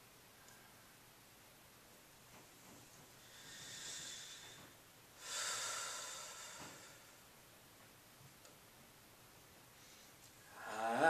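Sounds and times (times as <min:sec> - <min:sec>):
man inhaling deeply: 0:03.2 - 0:07.2.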